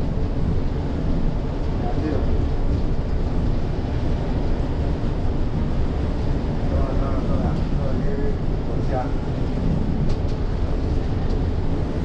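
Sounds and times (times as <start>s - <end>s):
bus rumbling inside cabin: 0.0s - 12.0s.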